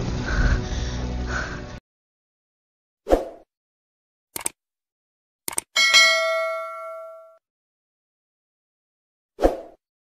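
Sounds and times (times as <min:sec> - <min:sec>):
bright bell chime: 0:05.8 - 0:07.4.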